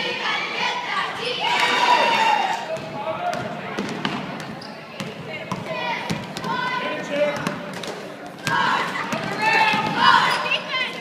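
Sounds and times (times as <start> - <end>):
voices and shouts: 0.0 - 3.3, 5.6 - 7.4, 8.4 - 11.0.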